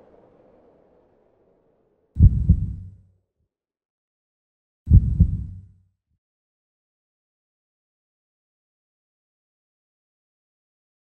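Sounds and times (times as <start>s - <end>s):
heartbeat thumps: 2.2s - 3.0s, 4.9s - 5.7s.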